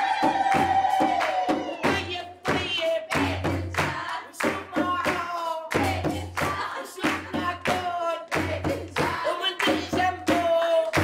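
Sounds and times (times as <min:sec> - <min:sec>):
frame drums beaten: 0:00.0 - 0:11.0
hands clapping in rhythm: 0:00.0 - 0:11.0.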